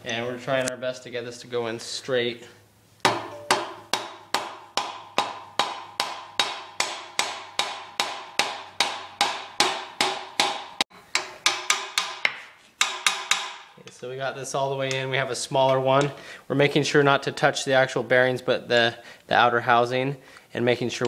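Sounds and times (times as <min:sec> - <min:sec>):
hammer knocks on metal: 0:03.0 - 0:10.6.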